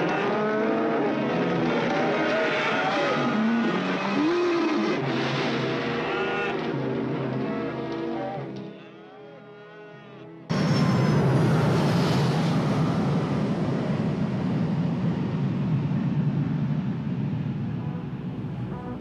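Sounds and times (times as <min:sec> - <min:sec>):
jet airliner engine roar: 0:10.5 - 0:19.0.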